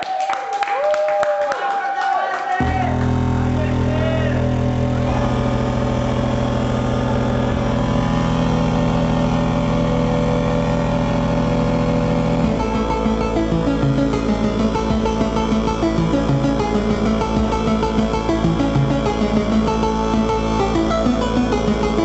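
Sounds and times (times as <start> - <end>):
chiptune dance music: 2.6 - 22.0.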